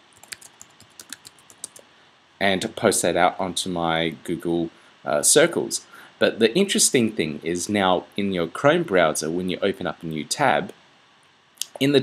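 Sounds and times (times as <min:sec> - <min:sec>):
keyboard typing clicks: 0:00.2 - 0:01.8.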